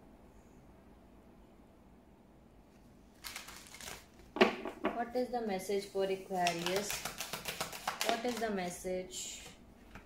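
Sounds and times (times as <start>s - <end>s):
cards snapping: 3.2s - 4.1s, 6.4s - 8.4s
cards being shuffled: 3.2s - 4.2s, 6.3s - 8.8s.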